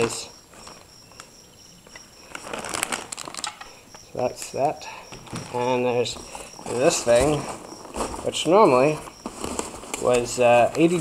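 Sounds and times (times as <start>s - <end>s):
plastic packaging crinkling: 2.2s - 3.8s, 5.2s - 11.0s.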